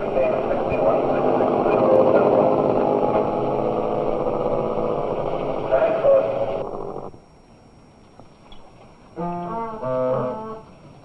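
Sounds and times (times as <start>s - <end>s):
motorcycle engines running: 0.0s - 7.1s.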